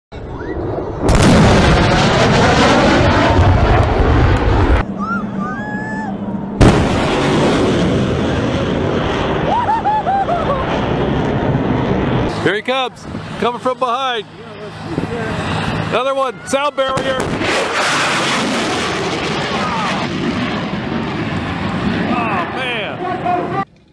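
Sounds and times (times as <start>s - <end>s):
loud boom: 0.1s - 5.2s, 6.5s - 12.6s, 16.8s - 23.0s
jet roar: 0.1s - 23.7s.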